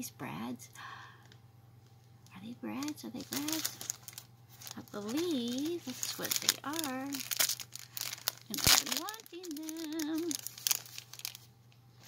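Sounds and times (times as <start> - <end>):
plastic packaging crinkling: 2.7 - 12.0.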